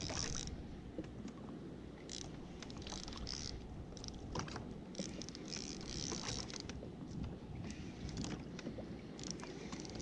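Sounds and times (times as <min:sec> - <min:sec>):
water lapping against kayak hull: 0:00.0 - 0:10.0.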